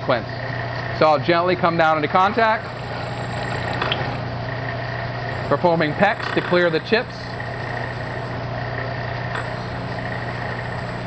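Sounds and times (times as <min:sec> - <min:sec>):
drill press drilling metal: 0:02.2 - 0:04.3, 0:05.3 - 0:08.5, 0:09.4 - 0:11.0
faint high whistle: 0:06.0 - 0:08.3.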